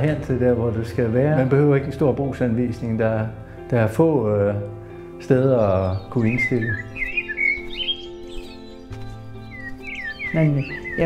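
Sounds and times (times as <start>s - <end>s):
music with held notes: 0.0s - 11.0s
small birds chirping: 5.2s - 11.0s.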